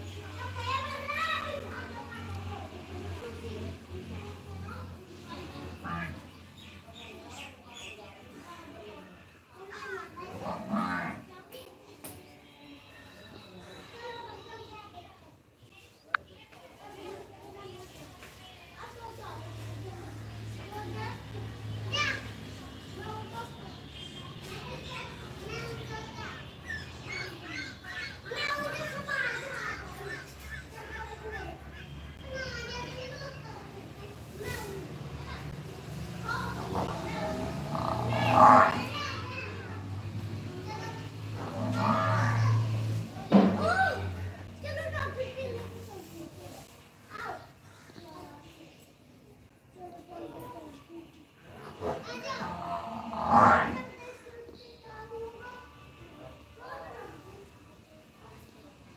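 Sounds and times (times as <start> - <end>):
children chattering and calling out: 0.0 - 58.9.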